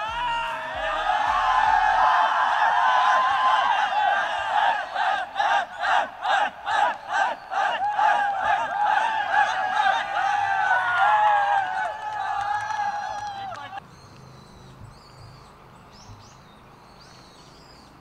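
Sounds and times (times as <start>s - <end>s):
group chanting rhythmic shouts: 0.0s - 13.0s
group cheering and shouting: 0.0s - 13.8s.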